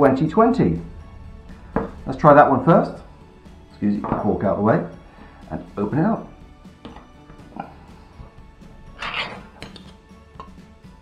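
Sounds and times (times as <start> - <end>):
tin lid scraping tear: 9.0 - 10.0.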